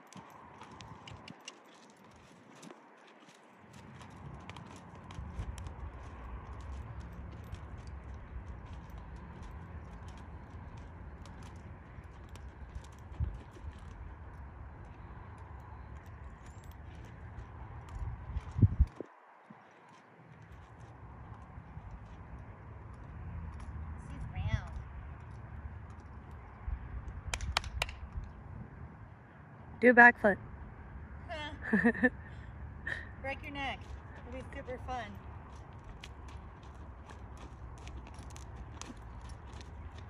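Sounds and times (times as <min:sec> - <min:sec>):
hooves in soft sand: 0:00.0 - 0:27.1, 0:33.3 - 0:40.0.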